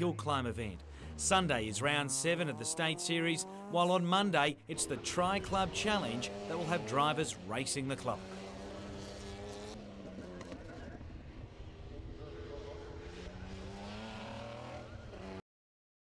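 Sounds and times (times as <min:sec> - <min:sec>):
race car engine under load: 0:04.6 - 0:15.4.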